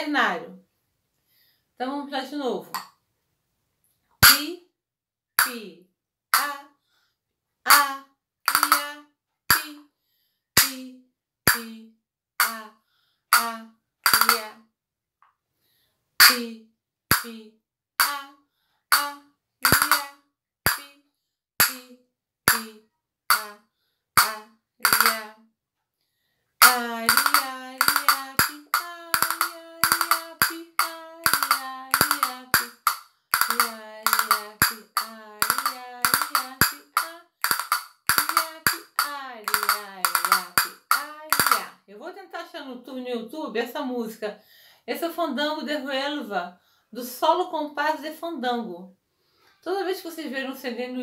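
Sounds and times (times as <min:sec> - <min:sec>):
castanets clicking: 0:08.5 - 0:08.8, 0:14.1 - 0:14.4, 0:19.6 - 0:20.0, 0:24.2 - 0:25.2, 0:26.6 - 0:41.6.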